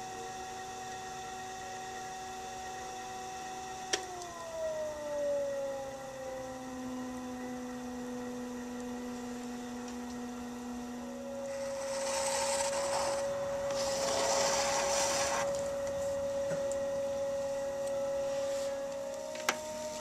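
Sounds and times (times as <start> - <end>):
pottery wheel motor whining: 0.0 - 20.0
metal tool scraping clay: 11.5 - 15.5.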